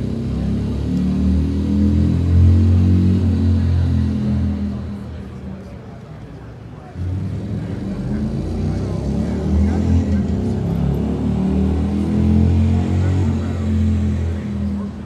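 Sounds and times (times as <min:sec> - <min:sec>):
heavy engine rumbling: 0:00.0 - 0:15.0.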